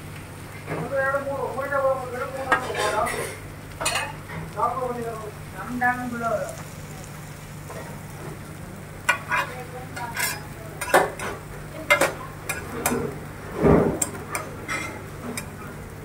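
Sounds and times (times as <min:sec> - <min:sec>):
metal spatula scraping griddle: 0:02.5 - 0:04.2, 0:09.1 - 0:15.6.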